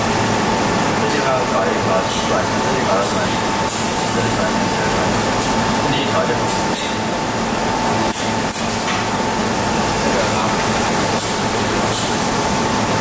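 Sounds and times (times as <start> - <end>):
workshop machinery drone: 0.0 - 13.0.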